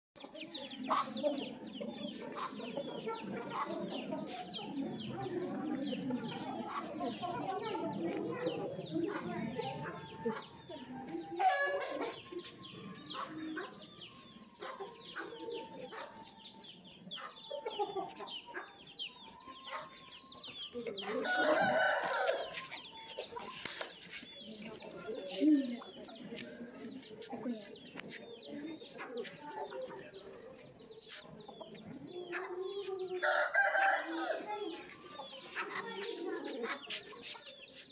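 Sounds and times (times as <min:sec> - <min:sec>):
chickens clucking: 0:00.2 - 0:37.9
small birds chirping: 0:00.2 - 0:37.9.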